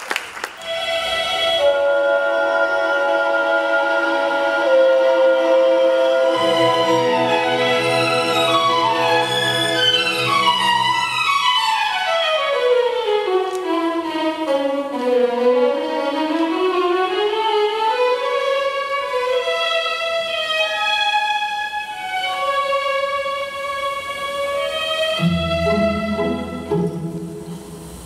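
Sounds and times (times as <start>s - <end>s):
ballet music with solo violin: 0.6s - 27.8s.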